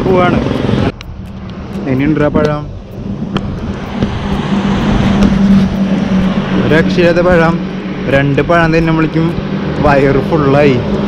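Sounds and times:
vehicle passing on highway: 0.0 - 11.0.

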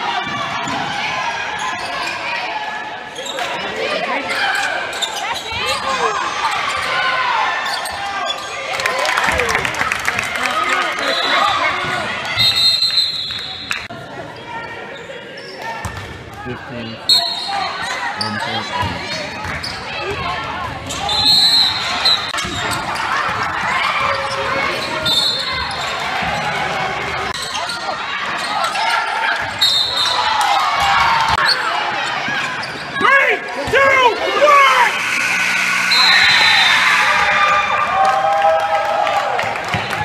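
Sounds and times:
sneakers squeaking: 3.1 - 8.6, 14.6 - 16.2, 17.1 - 37.4.

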